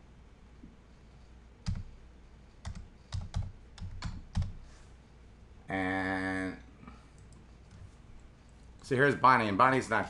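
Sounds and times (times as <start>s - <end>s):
computer keyboard typing: 1.6s - 1.9s, 2.6s - 4.6s.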